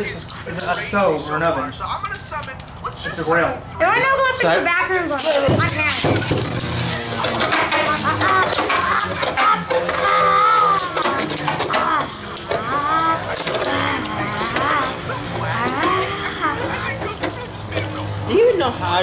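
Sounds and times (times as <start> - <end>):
children's wordless voices: 3.7 - 19.0
spinning tops clacking together: 5.2 - 18.3.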